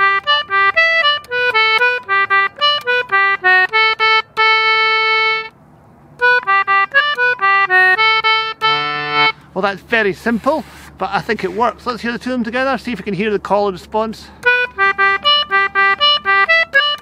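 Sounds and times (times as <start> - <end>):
concertina playing a jig: 0.0 - 12.0, 14.4 - 17.0.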